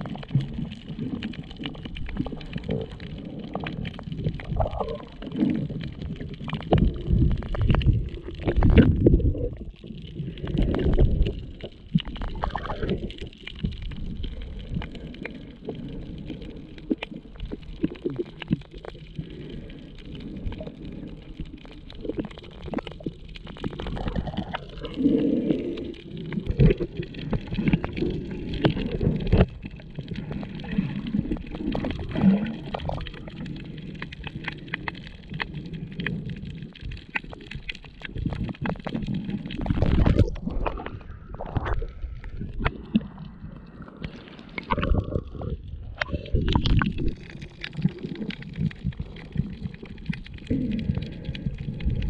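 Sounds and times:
underwater sloshing and gurgling: 0:00.0 - 0:52.0.

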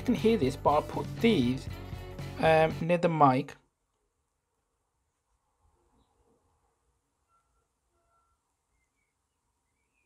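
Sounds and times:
faint short beeps: 0:07.2 - 0:09.1.

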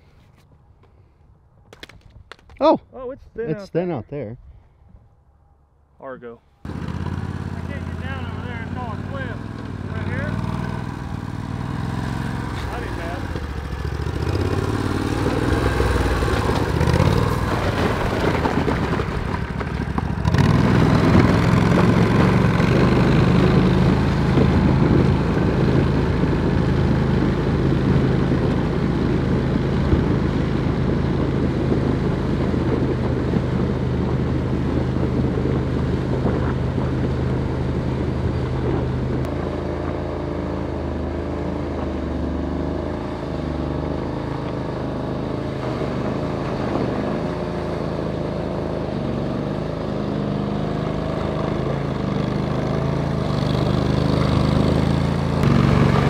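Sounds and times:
vehicle engine running: 0:06.6 - 0:56.0
vehicle churning through muddy water: 0:06.7 - 0:39.2, 0:39.8 - 0:56.0.

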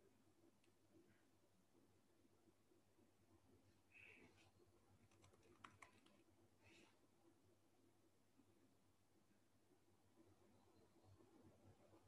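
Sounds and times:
computer keyboard typing: 0:05.0 - 0:06.2.

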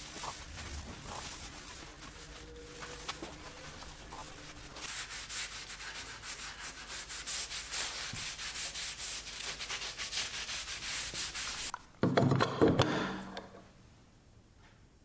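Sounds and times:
rag rubbing wood: 0:00.0 - 0:11.7
knocks and handling: 0:11.7 - 0:13.6.

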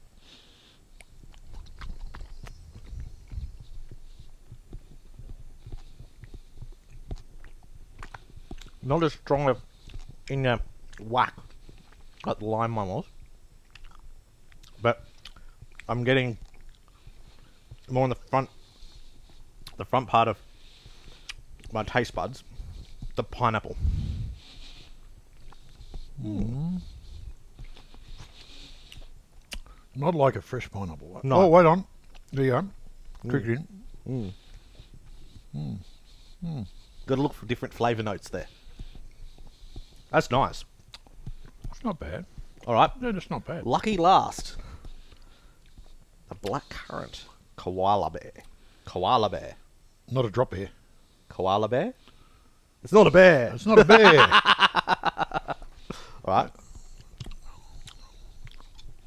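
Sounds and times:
gummy sweet being chewed: 0:00.9 - 0:12.4, 0:13.0 - 0:23.7, 0:24.5 - 0:30.0, 0:31.7 - 0:47.4, 0:55.5 - 0:59.0
wet mouth clicks: 0:01.0 - 0:08.8, 0:13.6 - 0:17.9, 0:24.8 - 0:29.8, 0:40.8 - 0:41.9, 0:55.6 - 0:59.0
man speaking: 0:26.2 - 0:26.9, 0:52.9 - 0:54.4.

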